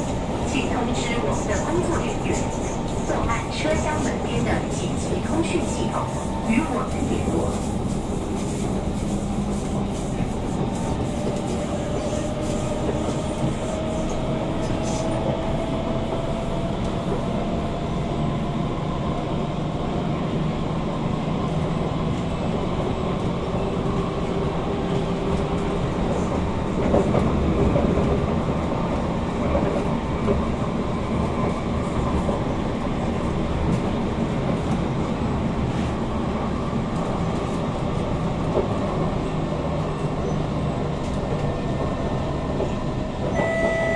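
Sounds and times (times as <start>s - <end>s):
train rolling rumble: 0.0s - 43.9s.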